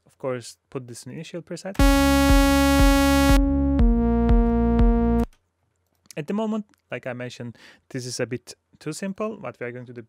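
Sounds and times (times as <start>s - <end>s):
buzzy sawtooth synth tone: 1.8s - 5.3s
kick drum beat: 1.8s - 5.3s.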